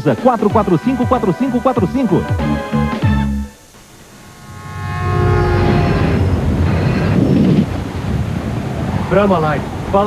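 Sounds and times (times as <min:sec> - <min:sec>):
music with sustained tones: 0:00.0 - 0:07.6
deep train rumble: 0:04.1 - 0:10.0.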